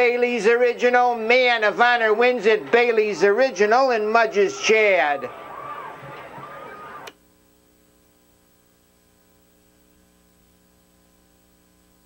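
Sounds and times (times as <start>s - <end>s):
track noise: 0.0s - 7.2s
low electrical hum: 0.0s - 12.0s.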